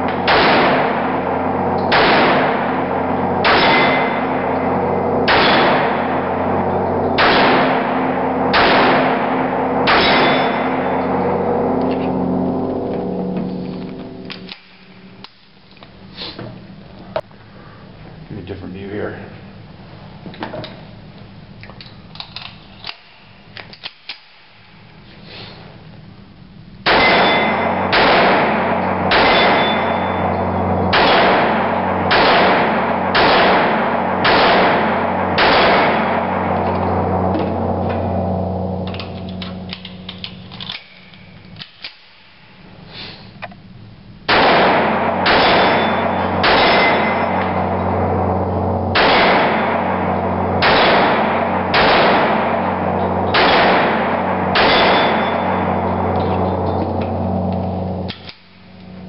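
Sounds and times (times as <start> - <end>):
pistol shots echoing: 0.1 - 12.3, 26.8 - 38.5, 44.3 - 56.6.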